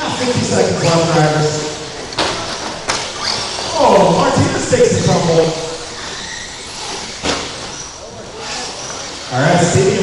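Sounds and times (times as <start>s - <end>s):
man speaking: 0.0s - 1.8s, 3.7s - 5.8s, 9.3s - 10.0s
rc trucks racing: 0.0s - 10.0s.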